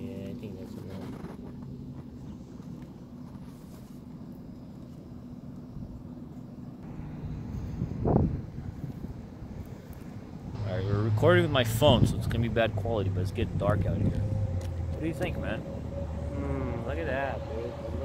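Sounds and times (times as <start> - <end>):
low mechanical hum: 0.0 - 18.0
brief rising sound: 14.0 - 18.0.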